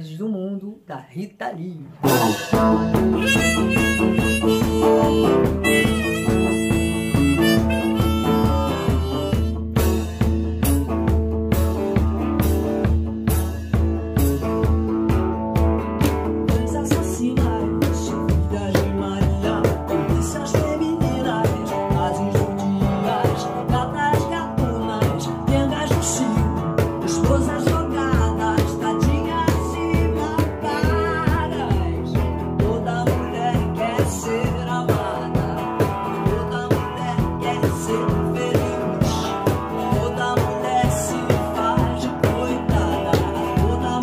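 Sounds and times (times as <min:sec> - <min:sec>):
woman singing: 0:00.0 - 0:09.5, 0:16.2 - 0:44.0
cajon beat: 0:01.8 - 0:44.0
strummed guitar: 0:01.8 - 0:44.0
harmonica melody: 0:02.1 - 0:10.0.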